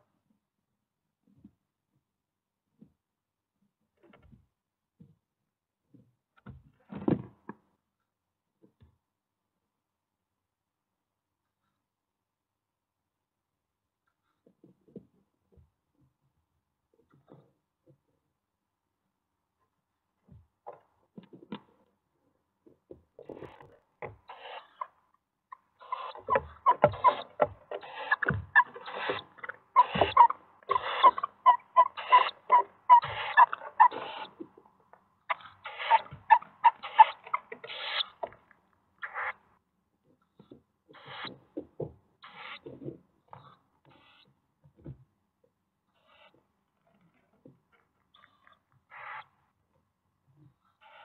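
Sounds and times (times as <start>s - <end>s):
owls scraping and rustling: 23.3s - 34.5s, 35.3s - 38.4s.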